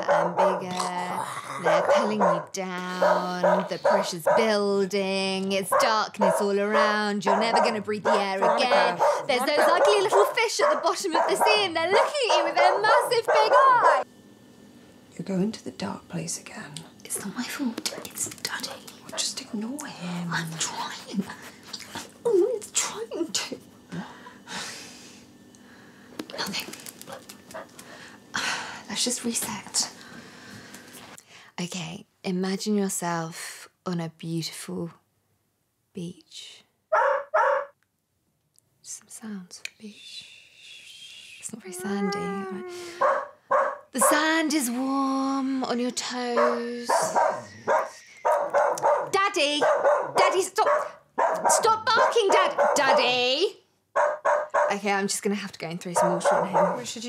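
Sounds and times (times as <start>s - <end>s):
dog barking: 0.0s - 0.7s, 1.6s - 4.6s, 5.7s - 14.0s, 36.9s - 37.8s, 43.0s - 44.2s, 46.3s - 53.2s, 54.0s - 54.8s, 56.0s - 56.9s
breathy hiss: 23.9s - 27.0s.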